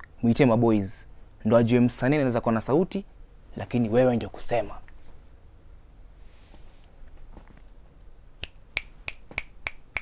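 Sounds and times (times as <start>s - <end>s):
fingers snapping: 8.4s - 10.0s.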